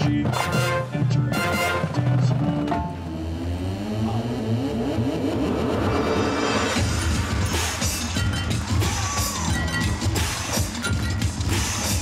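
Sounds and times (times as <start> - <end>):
marching band music: 0.0 - 3.2, 6.4 - 12.0
engine-like revving: 2.4 - 7.0.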